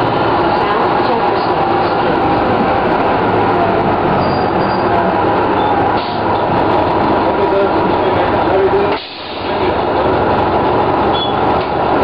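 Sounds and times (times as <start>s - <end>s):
bus engine running: 0.0s - 12.0s.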